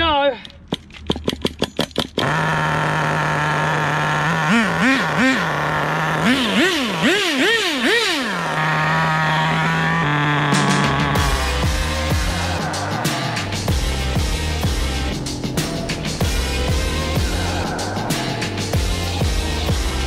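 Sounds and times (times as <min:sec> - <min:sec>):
small nitro engine revving: 0:02.2 - 0:20.0.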